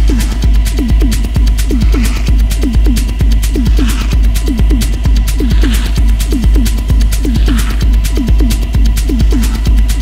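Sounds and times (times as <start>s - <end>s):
deep sustained bass: 0.0s - 10.0s
hi-hats ticking: 0.0s - 10.0s
techno kick drum: 0.0s - 10.0s.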